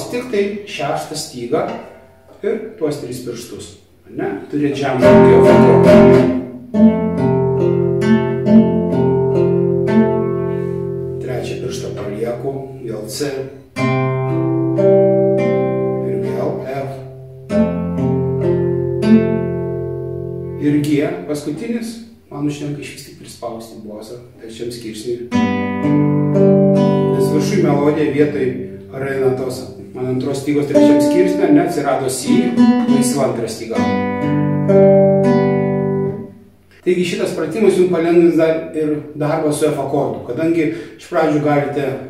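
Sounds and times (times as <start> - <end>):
classical guitar fingerpicked arpeggio: 1.6 - 2.1, 4.7 - 12.0, 13.8 - 20.6, 25.3 - 36.4.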